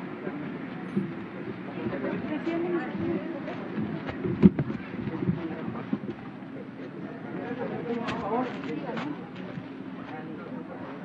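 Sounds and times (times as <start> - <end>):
crowd talking: 0.0 - 11.0.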